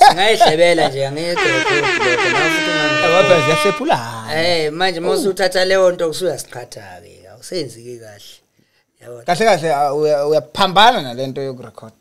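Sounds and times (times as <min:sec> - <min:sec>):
men's voices: 0:00.0 - 0:06.5
air horn sound effect: 0:01.4 - 0:04.0.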